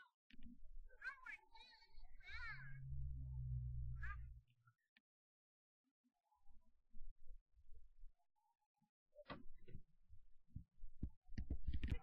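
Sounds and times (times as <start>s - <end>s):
low steady hum: 2.0s - 4.4s.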